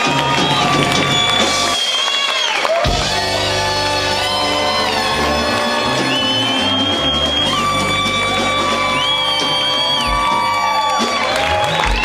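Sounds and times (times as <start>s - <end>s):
reggae band playing: 0.0s - 1.8s, 2.8s - 12.0s
horns holding long notes: 2.8s - 11.9s.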